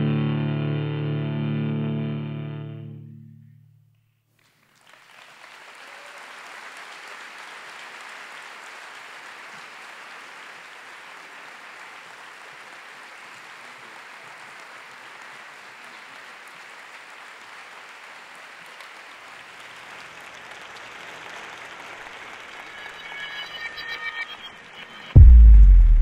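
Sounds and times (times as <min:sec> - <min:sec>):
audience applauding: 0:04.4 - 0:24.4.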